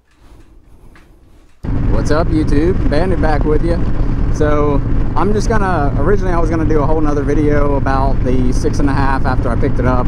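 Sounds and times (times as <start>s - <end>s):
wind rushing over microphone: 1.6s - 8.6s
motorcycle engine at highway speed: 1.6s - 10.0s.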